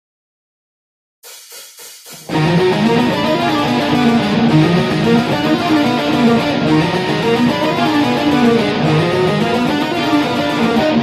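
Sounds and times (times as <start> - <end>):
electric guitar playing fast notes: 2.1 - 11.0.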